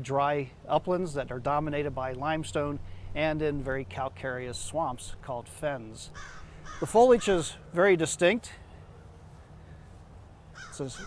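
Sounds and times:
man speaking: 0.0s - 6.2s, 6.8s - 8.6s, 10.8s - 11.0s
low steady hum: 0.0s - 11.0s.

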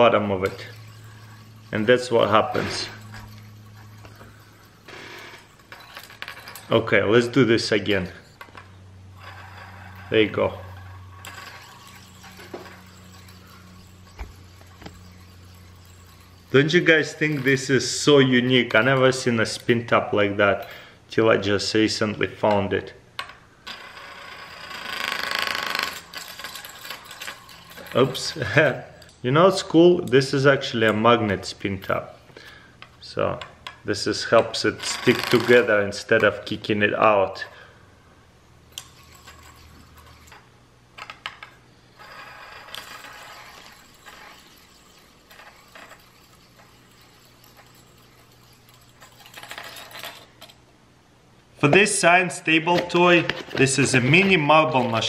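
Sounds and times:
fast buzzing metal rattle: 0.0s - 22.5s, 23.1s - 36.9s, 38.5s - 50.7s
spin top whirring on table: 0.0s - 37.4s, 38.6s - 50.7s.

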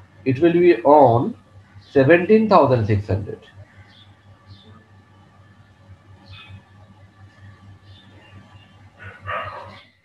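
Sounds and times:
low steady hum: 0.0s - 10.0s
animal call: 7.9s - 10.0s.

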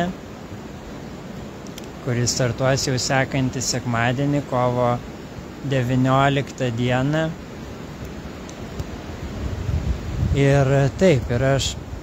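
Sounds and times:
wind buffeting microphone: 7.6s - 12.0s.

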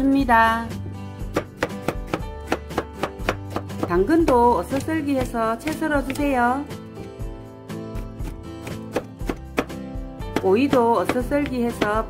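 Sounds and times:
knife chopping on plastic board: 1.3s - 6.4s, 8.0s - 12.0s.

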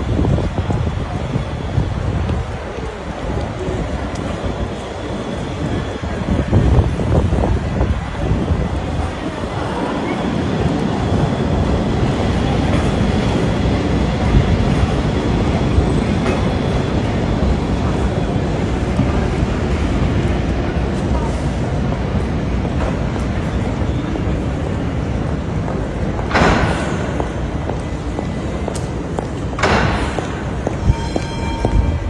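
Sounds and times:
street traffic: 0.0s - 32.0s
tram running on rails: 0.0s - 32.0s.

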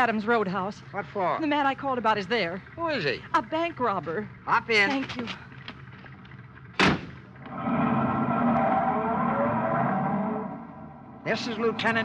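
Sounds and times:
steady multi-pitched tone: 7.5s - 12.0s.

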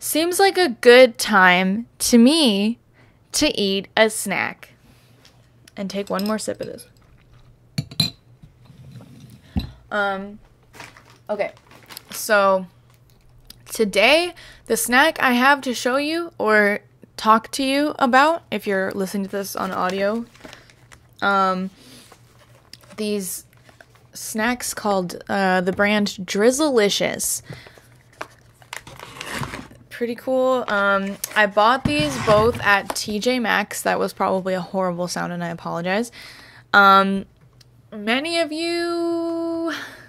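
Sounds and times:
woman speaking: 0.0s - 2.8s, 5.8s - 6.8s, 9.9s - 10.4s, 11.3s - 12.7s, 13.7s - 20.3s, 21.2s - 21.8s, 22.9s - 23.4s, 24.2s - 27.4s, 29.9s - 36.1s, 38.0s - 39.8s
plastic snack bag crinkling: 10.7s - 12.3s, 19.5s - 21.2s.

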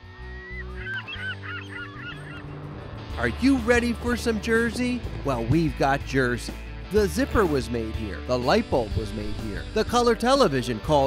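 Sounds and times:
seagulls calling: 0.0s - 4.7s
low sustained music: 0.0s - 11.0s.

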